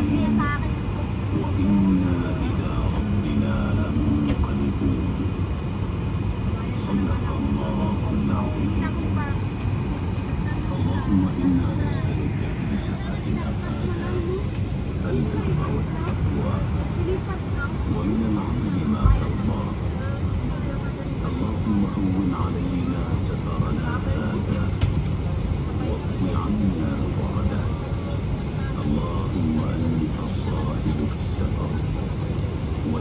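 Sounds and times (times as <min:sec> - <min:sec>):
aircraft cabin rumble: 0:00.0 - 0:33.0
indistinct passenger voices: 0:00.0 - 0:33.0.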